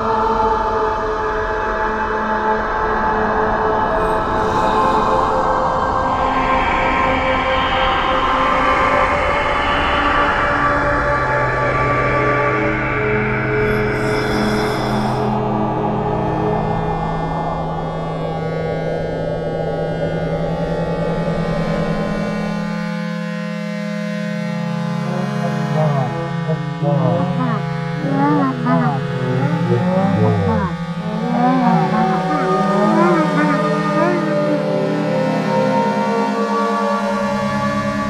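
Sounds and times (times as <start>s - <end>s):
low drone of held tones: 12.3s - 22.6s, 24.2s - 38.0s
electronic drone music: 24.9s - 36.6s.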